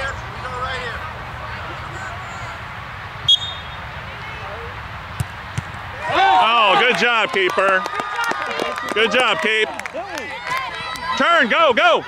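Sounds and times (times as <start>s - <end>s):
referee's whistle blast: 3.3s - 3.8s.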